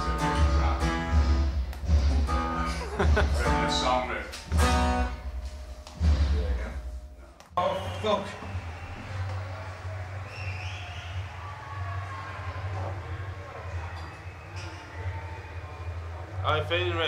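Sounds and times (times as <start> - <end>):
strummed guitar: 0.0 - 6.5.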